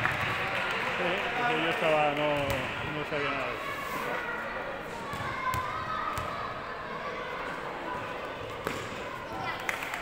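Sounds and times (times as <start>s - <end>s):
basketball bouncing on court: 5.1s - 6.3s, 8.6s - 8.9s.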